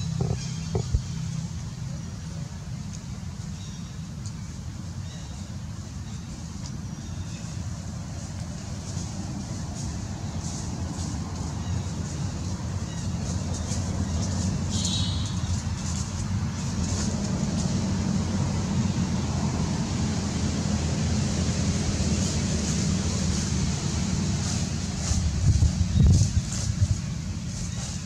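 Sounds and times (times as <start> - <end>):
low outdoor rumble: 0.0 - 28.0.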